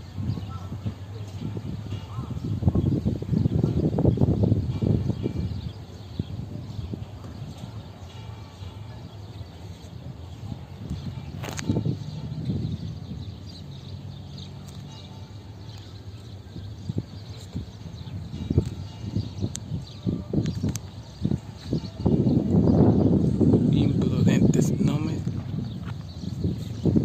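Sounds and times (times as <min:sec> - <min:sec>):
distant diesel locomotives rumbling: 0:00.0 - 0:20.3
outdoor background noise: 0:00.0 - 0:27.0
low bumps: 0:09.9 - 0:27.0.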